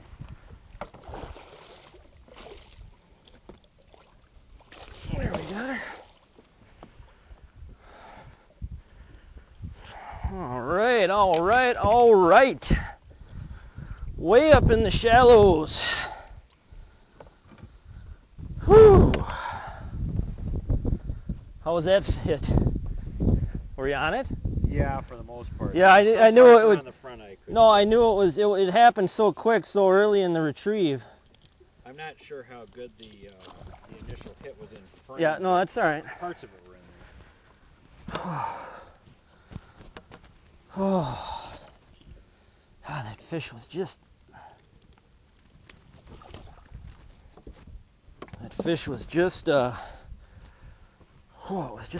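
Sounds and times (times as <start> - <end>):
man exclaiming ohh: 18.6 - 19.5, 40.7 - 41.5.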